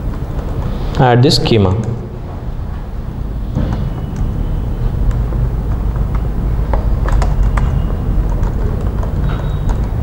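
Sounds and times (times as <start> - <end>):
keyboard or mouse clicks: 5.0 - 10.0.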